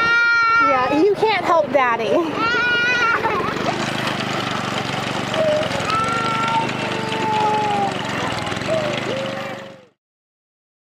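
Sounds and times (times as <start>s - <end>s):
toddler wailing: 0.0s - 1.1s, 2.3s - 3.6s, 5.3s - 9.9s
small engine running: 0.0s - 10.0s.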